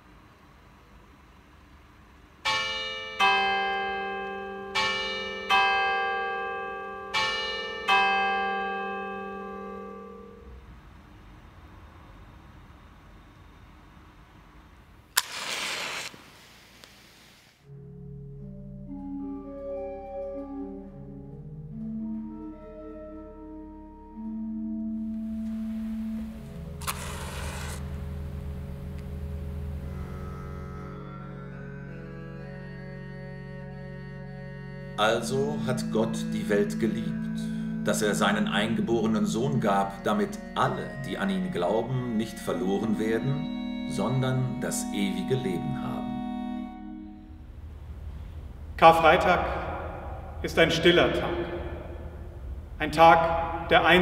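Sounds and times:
church bells ringing: 2.4 - 10.7, 34.9 - 47.5, 48.9 - 54.0
short burst of noise: 15.2 - 17.6, 26.8 - 27.9
pipe organ sustained notes: 17.7 - 54.0.

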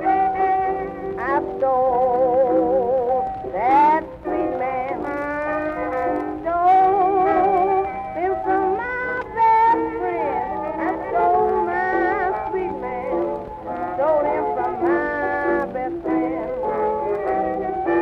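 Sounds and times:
small jazz band playing: 2.7 - 18.0.

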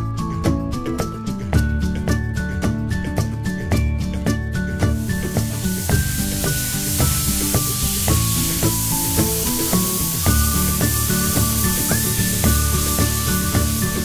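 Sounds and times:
background music: 0.0 - 14.0
spray gun hissing: 5.0 - 14.0.

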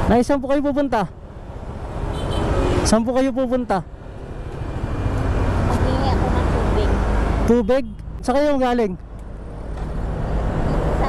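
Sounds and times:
road vehicle passing: 0.0 - 11.0.

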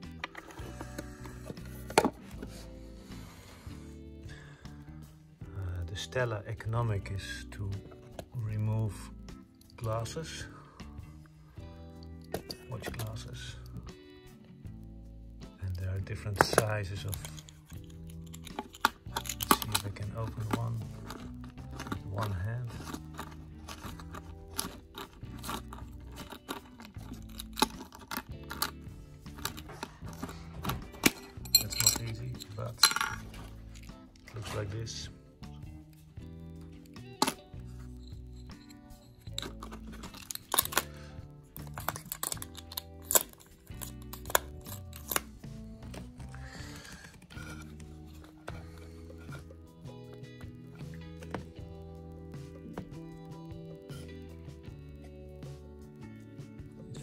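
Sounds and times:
background music: 0.0 - 57.0
metal dies clicking and clinking: 16.4 - 33.3, 41.6 - 45.3.

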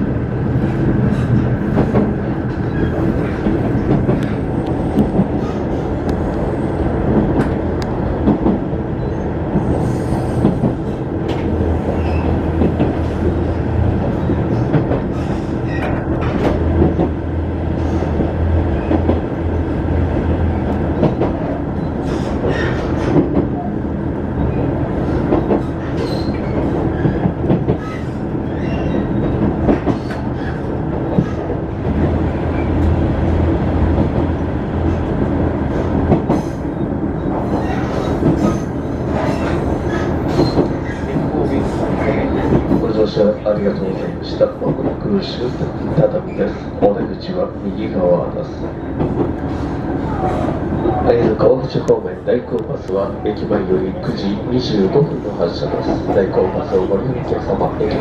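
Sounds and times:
train engine drone: 0.0 - 58.0
wheels rumbling on rails: 0.0 - 58.0.

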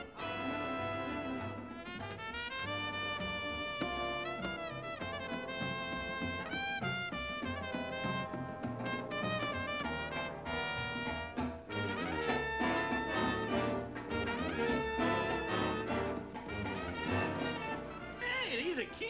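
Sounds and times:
big-band jazz: 0.0 - 19.0
brass section stabbing phrases: 0.0 - 19.0.

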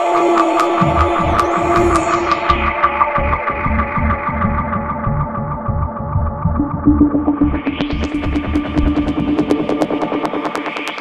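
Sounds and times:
pulsing bass line: 0.8 - 10.5
held synth notes: 6.4 - 10.5.

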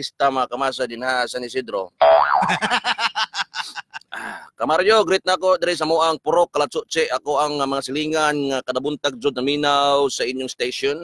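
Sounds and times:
springy boing sound effect: 2.0 - 2.6.

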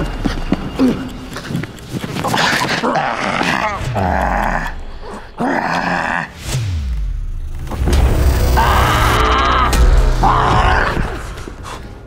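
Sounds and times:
creature growling: 2.3 - 6.4.

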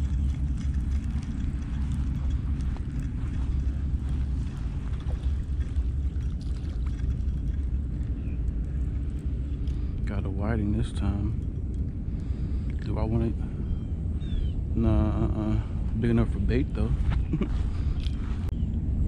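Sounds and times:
wind rumble on microphone: 0.0 - 19.0.

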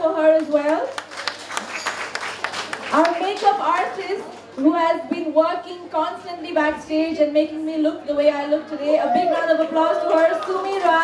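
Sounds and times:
audience applauding: 1.0 - 3.5.

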